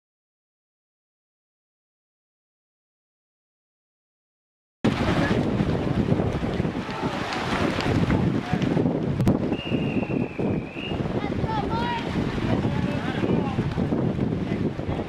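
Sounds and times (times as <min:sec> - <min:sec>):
crowd voices: 0:04.9 - 0:05.8, 0:06.4 - 0:08.9, 0:09.5 - 0:15.0
water splashing: 0:04.9 - 0:15.0
wind rumbling on microphone: 0:04.9 - 0:15.0
people shouting: 0:06.8 - 0:07.5.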